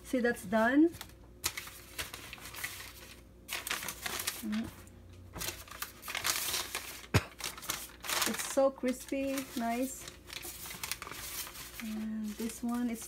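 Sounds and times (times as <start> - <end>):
paper crinkling and rustling: 0.8 - 13.0.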